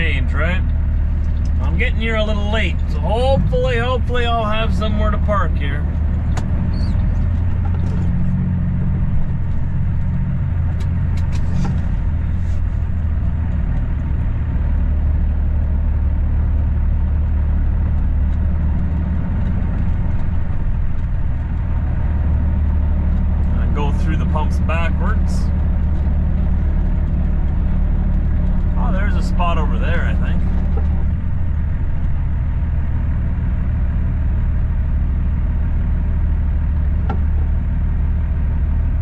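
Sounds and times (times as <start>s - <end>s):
diesel truck engine running: 0.0s - 39.0s.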